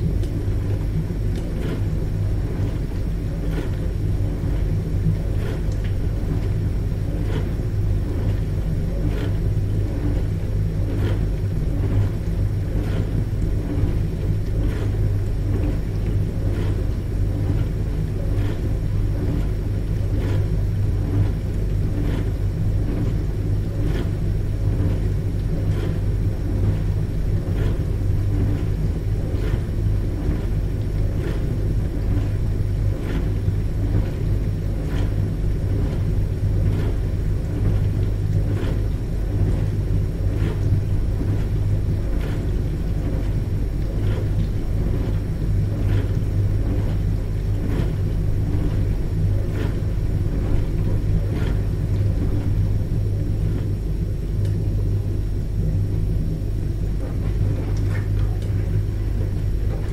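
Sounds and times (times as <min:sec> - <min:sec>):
dishwasher pump hum: 0:00.0 - 0:59.9.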